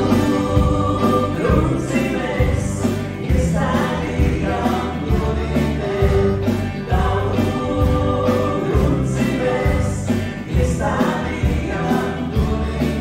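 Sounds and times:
bass: 0.0 - 13.0
drums: 0.0 - 13.0
electric guitars: 0.0 - 13.0
keyboard: 0.0 - 13.0
voices singing: 0.0 - 13.0.

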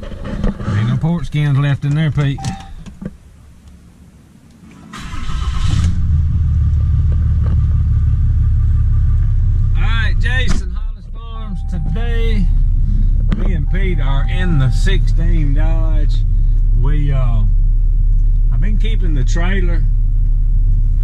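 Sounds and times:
engine cranking on starter: 4.7 - 6.4
engine idling: 5.0 - 21.0.

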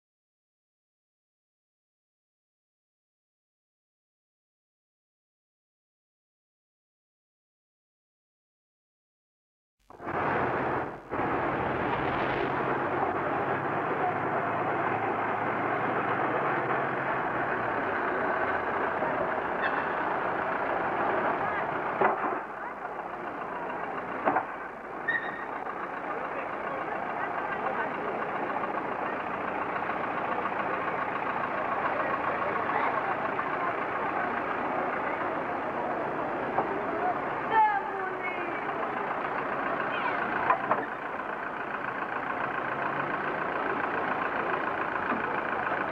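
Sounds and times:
diesel locomotive running: 9.9 - 45.9
indistinct voices: 10.0 - 45.9.

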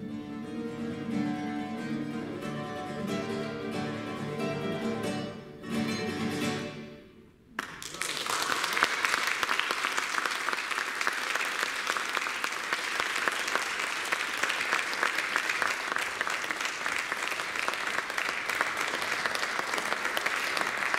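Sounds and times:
audience applauding: 7.6 - 20.9.

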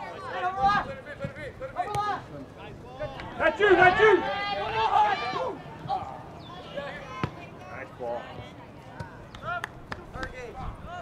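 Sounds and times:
people shouting: 3.1 - 7.5.

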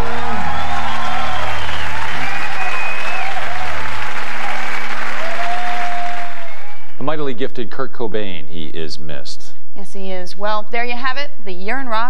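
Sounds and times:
shouts and whistles: 0.0 - 7.0
audience applauding and cheering: 0.0 - 7.4.

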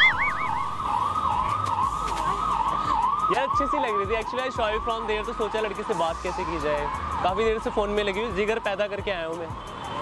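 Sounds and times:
siren yelping: 0.0 - 6.2.

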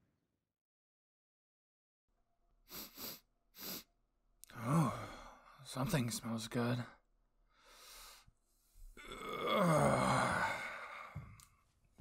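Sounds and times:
man groaning: 9.0 - 11.0.

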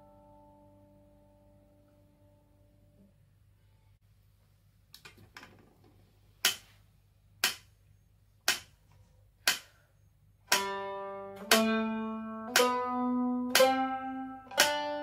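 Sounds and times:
metronome ticking: 7.4 - 7.7, 8.4 - 8.8, 9.4 - 9.8, 10.5 - 15.0
mandolin plucked note: 10.5 - 15.0.

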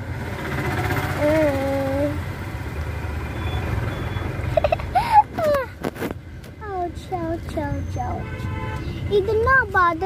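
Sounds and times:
car running heard inside cabin: 0.0 - 10.0.

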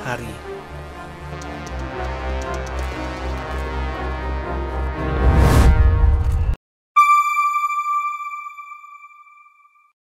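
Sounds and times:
background music: 0.0 - 6.4.

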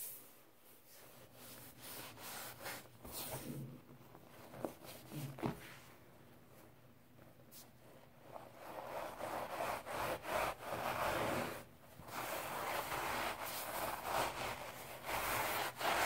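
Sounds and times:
scouring powder scraped by hand: 8.6 - 16.0.

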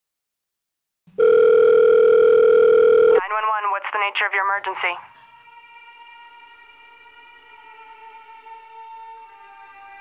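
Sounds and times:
telephone line tone: 1.1 - 3.2
person speaking on phone: 3.0 - 5.1.

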